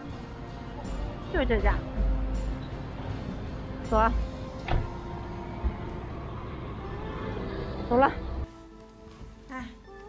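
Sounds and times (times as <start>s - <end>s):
street background hum: 0.0s - 9.5s.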